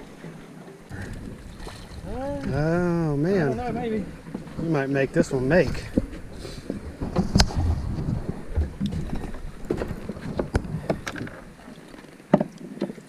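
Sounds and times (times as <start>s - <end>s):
wind rumble on microphone: 0.9s - 11.6s.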